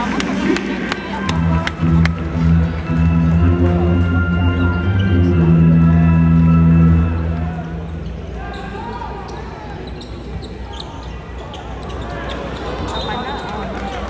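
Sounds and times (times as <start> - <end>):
crowd talking: 0.0 - 14.0
heavy bass music over loudspeakers: 1.1 - 8.0.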